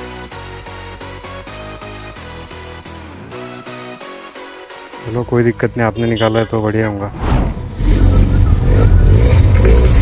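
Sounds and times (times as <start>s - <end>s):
motor vehicle rumbling: 6.4s - 10.0s.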